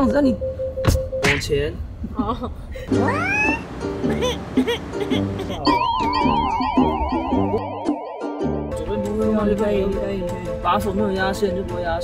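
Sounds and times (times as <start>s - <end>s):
cat meow: 3.0s - 3.6s
music with chirping notes: 3.0s - 12.0s.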